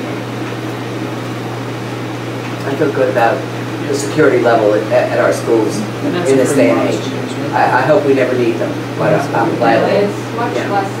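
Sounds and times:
low hum with hiss: 0.0s - 11.0s.

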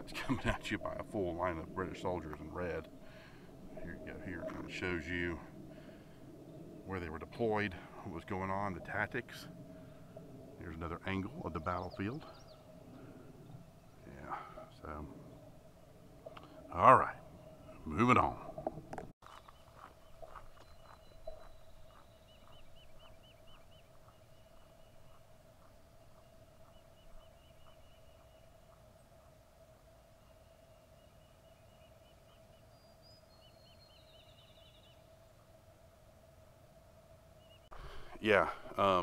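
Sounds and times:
faint steady hum: 0.0s - 19.1s, 19.7s - 39.0s
footsteps on paved path: 19.0s - 29.3s
bird trills: 19.4s - 29.3s.

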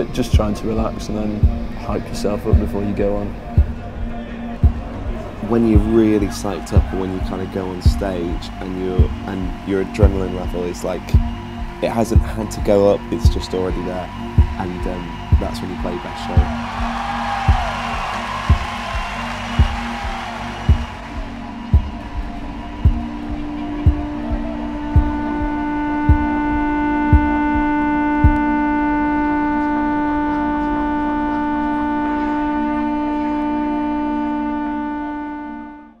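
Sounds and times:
droning electric guitar feedback: 0.0s - 36.0s
kick drum beating: 1.4s - 1.6s, 3.6s - 3.8s, 4.6s - 4.9s, 6.8s - 7.3s, 11.2s - 11.4s, 12.2s - 12.4s, 13.3s - 13.5s, 14.3s - 14.6s, 16.4s - 24.2s, 25.0s - 26.3s, 27.1s - 27.4s.

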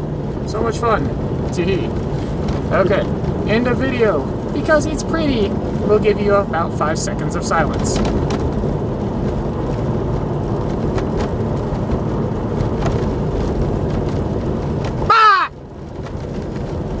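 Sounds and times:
car engine and tyres on gravel: 0.0s - 17.0s.

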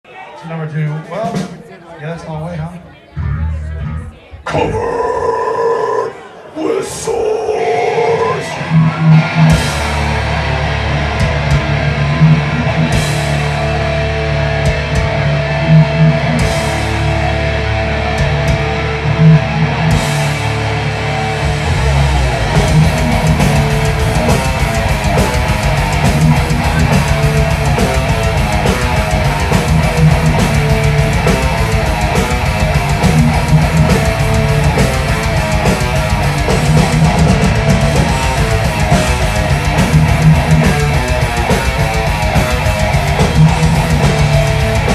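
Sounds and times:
distorted electric guitars: 3.1s - 44.9s
fast drumming: 11.0s - 13.7s, 21.4s - 44.9s.

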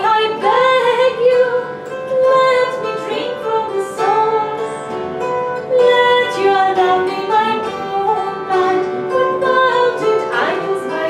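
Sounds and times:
woman singing: 0.0s - 5.0s, 5.6s - 11.0s
plucked harp strings: 0.0s - 11.0s.

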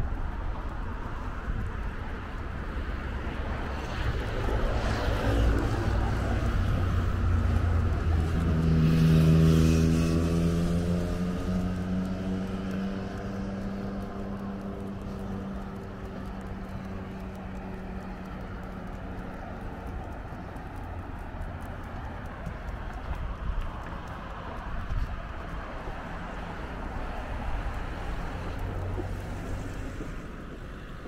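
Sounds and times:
low rumble of traffic: 0.0s - 31.0s
vehicle engine passing: 3.7s - 31.0s.

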